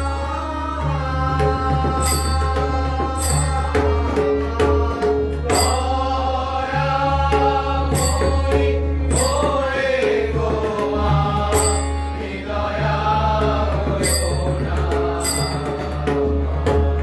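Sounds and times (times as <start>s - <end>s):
men singing devotional chant: 0.0s - 17.0s
hand drum: 1.0s - 12.3s, 13.3s - 17.0s
sharp ringing strikes: 2.0s - 3.8s, 5.5s - 6.2s, 7.9s - 9.9s, 11.6s - 12.3s, 14.0s - 16.0s.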